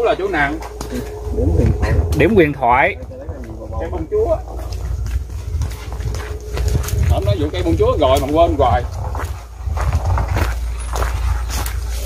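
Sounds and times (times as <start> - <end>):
wind rumble on microphone: 0.0 - 12.0
footsteps on a path: 0.4 - 2.4, 3.0 - 12.0
microphone handling noise: 0.6 - 12.0.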